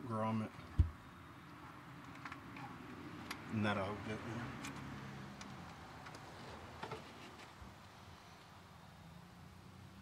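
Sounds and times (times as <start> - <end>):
faint clicks and knocks of parts: 1.5 - 3.5, 4.6 - 7.6.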